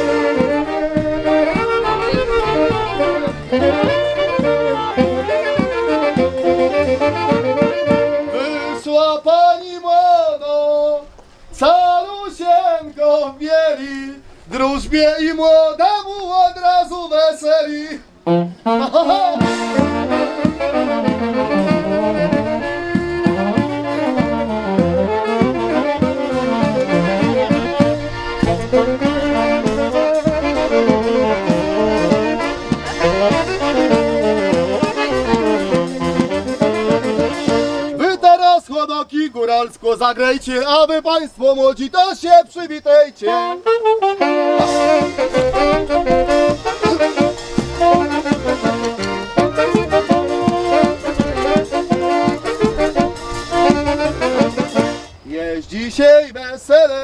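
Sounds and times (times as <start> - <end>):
steady drum beat: 0.0 - 8.3, 19.0 - 38.0, 44.6 - 55.2
bass line: 0.0 - 8.7, 18.3 - 38.0, 44.6 - 55.3
saxophone melody: 0.0 - 9.2, 18.0 - 38.1, 43.2 - 55.3
accordion: 0.0 - 9.3, 18.2 - 38.2, 43.2 - 55.4
folk band playing lively tune: 0.0 - 9.3, 18.3 - 38.6, 43.2 - 55.3
man singing unaccompanied: 0.0 - 57.0.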